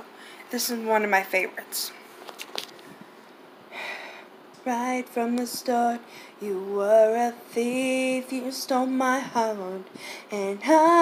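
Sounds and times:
woman breathing in: 3.7s - 4.3s, 10.0s - 10.3s.

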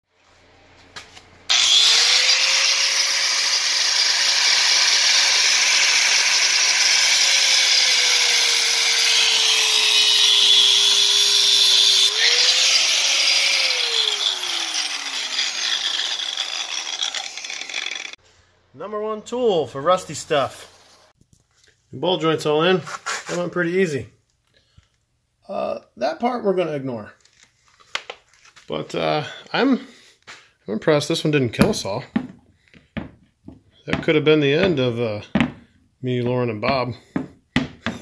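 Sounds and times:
angle grinder cutting steel: 1.5s - 18.2s.

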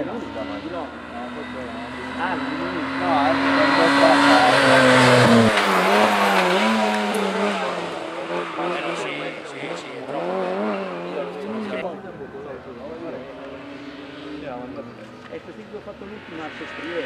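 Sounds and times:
car engine revving up and down: 0.0s - 11.8s, 12.7s - 17.0s
car engine at high revs: 0.0s - 11.9s, 12.6s - 17.0s
road noise rushing: 0.0s - 17.0s.

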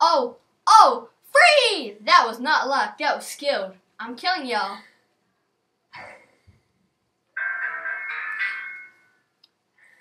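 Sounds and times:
phone ringtone melody: 7.4s - 9.2s.

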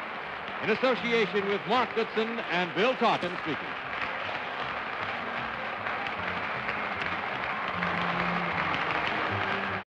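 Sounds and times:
audience applause: 0.0s - 9.9s.

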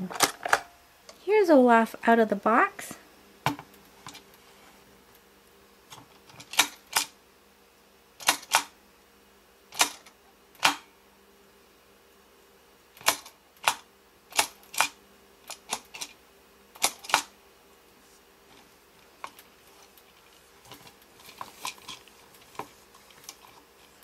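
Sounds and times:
plastic toy clicks: 13.0s - 16.1s.

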